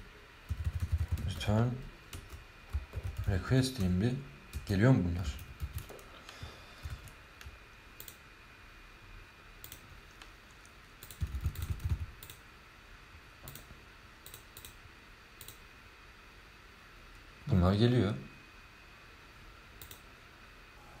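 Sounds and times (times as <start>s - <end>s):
faint room hum: 0.0s - 21.0s.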